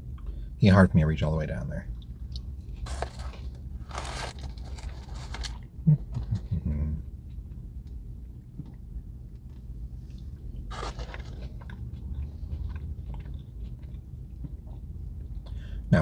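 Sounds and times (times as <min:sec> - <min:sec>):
steady low hum: 0:00.0 - 0:16.0
man chewing wetly: 0:07.2 - 0:15.6.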